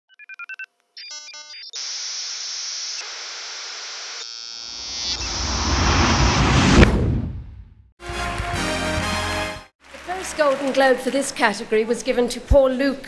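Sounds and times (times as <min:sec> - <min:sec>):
tv static hiss: 0:01.8 - 0:04.2
rising whoosh: 0:04.8 - 0:07.9.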